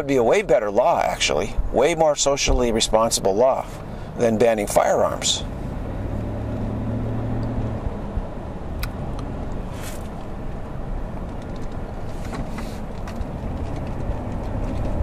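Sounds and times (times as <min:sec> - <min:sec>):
car engine and road rumble: 0:00.0 - 0:15.0.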